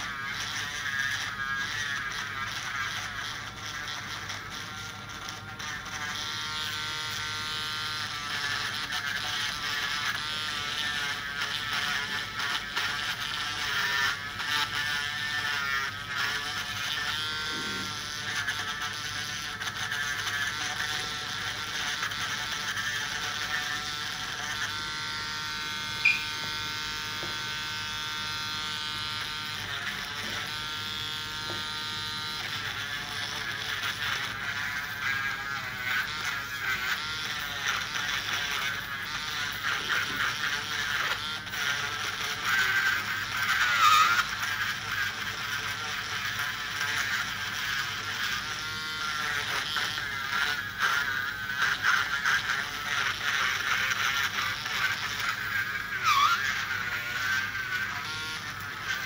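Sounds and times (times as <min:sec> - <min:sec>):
electric nail drill whining: 0:00.0 - 0:59.0.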